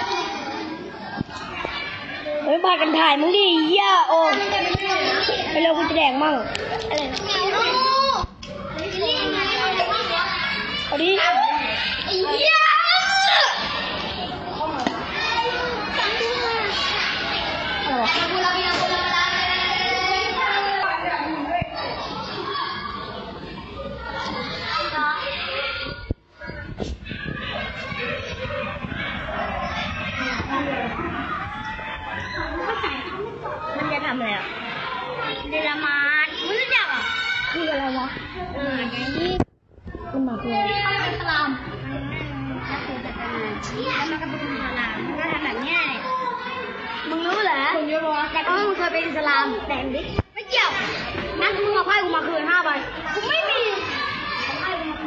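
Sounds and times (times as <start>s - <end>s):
children talking and calling out: 0.0s - 55.0s
lively chatter of voices: 0.0s - 55.0s.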